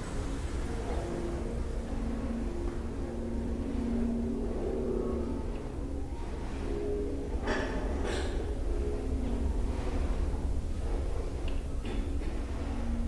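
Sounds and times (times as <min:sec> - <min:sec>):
low rumble: 0:00.0 - 0:13.0.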